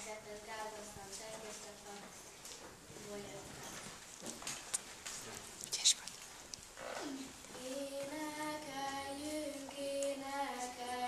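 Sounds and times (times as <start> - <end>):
girl singing folk song unaccompanied: 0.0 - 2.2, 7.4 - 11.0.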